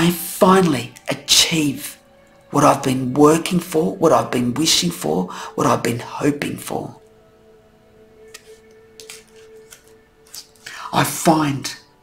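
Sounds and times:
soft background music: 0.0 - 12.0
cards clicking and sliding on table: 8.3 - 10.6.

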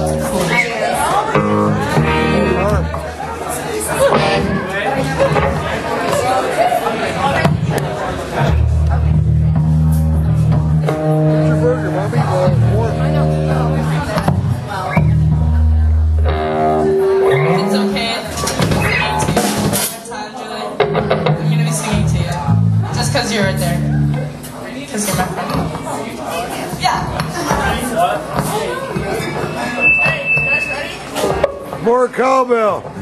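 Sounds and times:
electric guitar note: 15.0 - 18.2
drums and crashing cymbals: 18.6 - 20.0.

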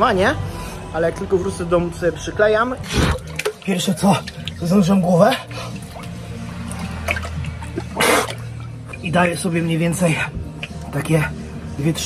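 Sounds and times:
background music with low notes: 0.0 - 12.0
water sloshing and pouring: 2.8 - 11.0.

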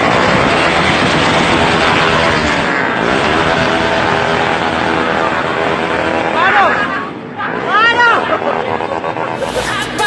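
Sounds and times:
motorcycle engines revving: 0.0 - 10.0.

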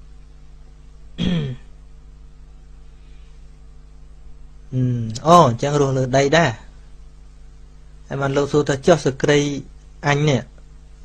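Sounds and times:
faint low hum: 0.0 - 11.0
man clearing throat: 1.2 - 1.7.

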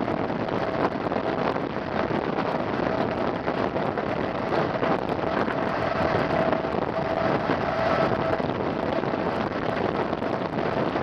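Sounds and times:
rolling rail noise: 0.0 - 11.0
steady high whine: 0.0 - 11.0
wind on microphone: 0.0 - 11.0.

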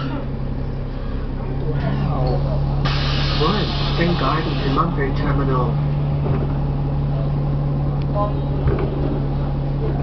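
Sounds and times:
bus engine idling hum: 0.0 - 10.0
compressed air hiss: 2.9 - 4.8.

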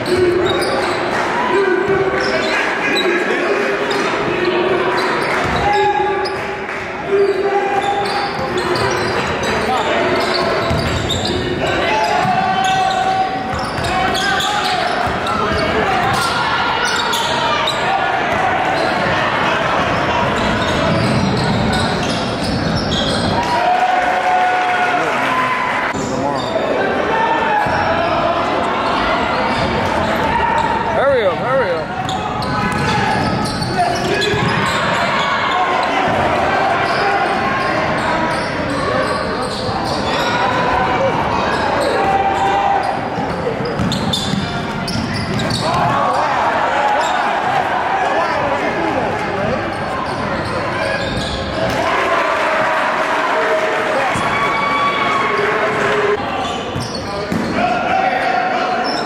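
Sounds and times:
echoing crowd voices: 0.0 - 59.0.

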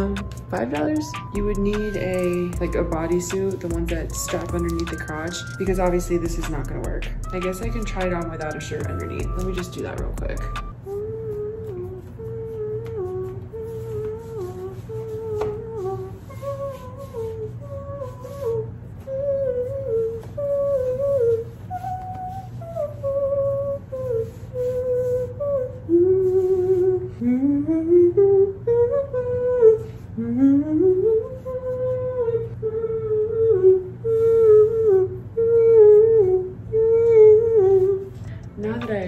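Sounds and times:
woman humming a tune: 0.0 - 39.0.

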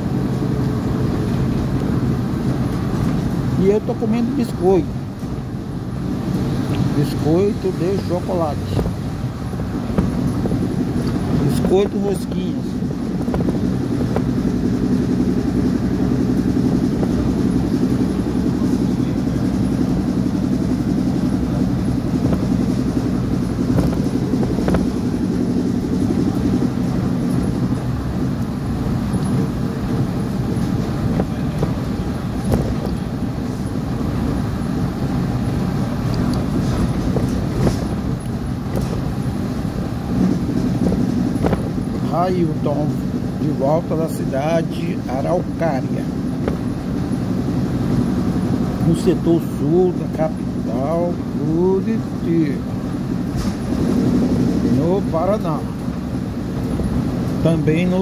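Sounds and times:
bus engine droning: 0.0 - 58.0
bus body knocks and rattles: 8.4 - 14.6, 19.6 - 35.8, 36.4 - 43.6, 45.4 - 48.6
person talking: 57.4 - 58.0.

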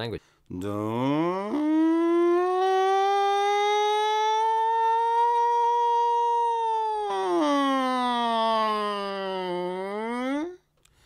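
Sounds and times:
person holding sustained vocal tone: 0.8 - 10.6.

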